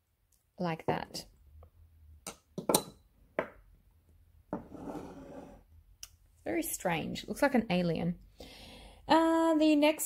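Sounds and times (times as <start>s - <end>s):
rubbing scrape: 4.7s - 5.6s.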